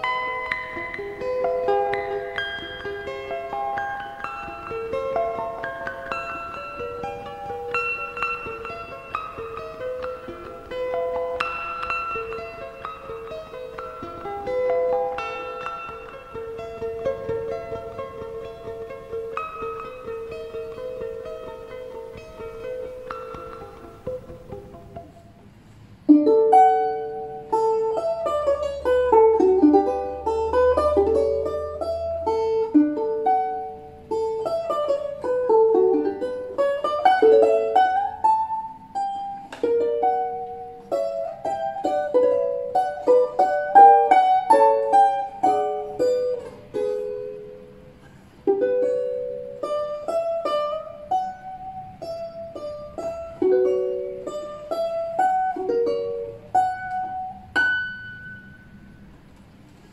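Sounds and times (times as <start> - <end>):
balalaika melody: 0.0 - 59.9.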